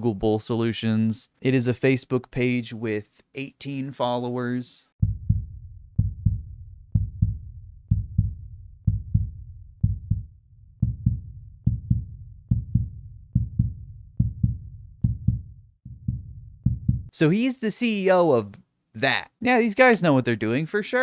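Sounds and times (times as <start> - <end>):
heartbeat thumps: 5.0 - 17.1.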